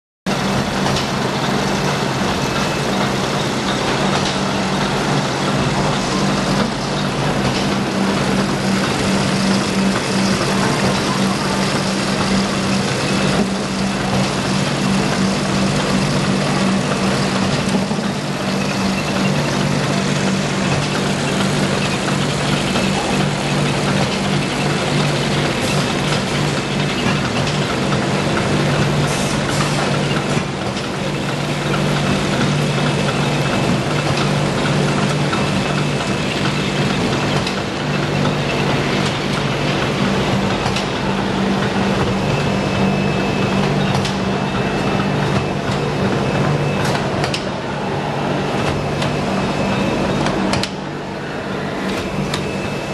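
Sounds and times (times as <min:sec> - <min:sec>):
machine clatter: 0:00.3 - 0:47.8
machine low hum: 0:00.3 - 0:52.9.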